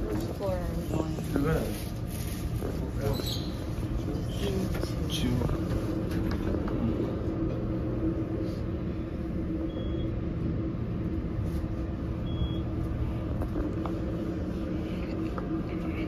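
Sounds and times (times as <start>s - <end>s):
elevator hum and rumble: 0.0s - 16.0s
faint high beeps: 9.7s - 10.1s.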